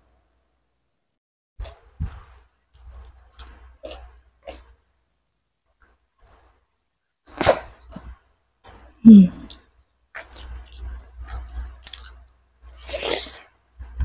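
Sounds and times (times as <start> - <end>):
chewing and mouth noises: 1.7 - 4.7, 10.2 - 13.6.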